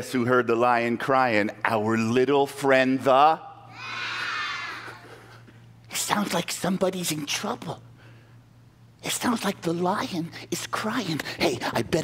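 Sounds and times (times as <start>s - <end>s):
children calling out together: 3.7s - 5.0s.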